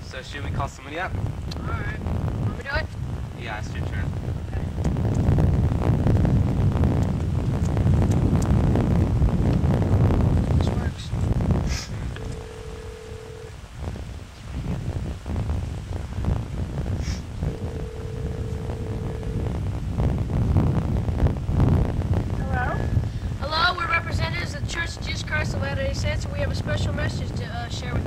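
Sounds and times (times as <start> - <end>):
wind noise on microphone: 0.0 - 28.0
intercom ring tones: 12.1 - 13.5, 17.5 - 19.5.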